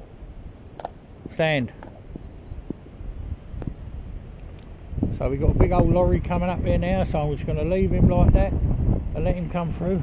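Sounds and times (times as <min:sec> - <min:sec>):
high bird chirps: 0:00.0 - 0:07.6
wind rumbling on microphone: 0:00.0 - 0:10.0.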